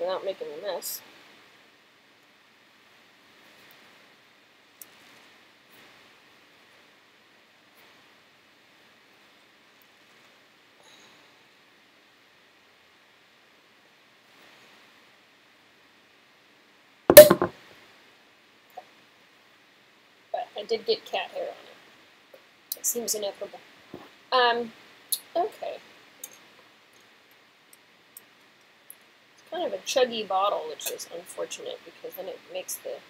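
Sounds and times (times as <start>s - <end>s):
faint room hiss: 0.0s - 33.0s
cork popping from bottle: 17.1s - 17.5s.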